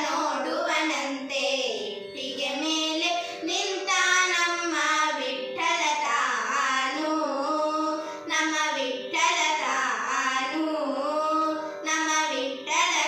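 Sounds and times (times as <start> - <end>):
girls singing together: 0.0 - 13.0.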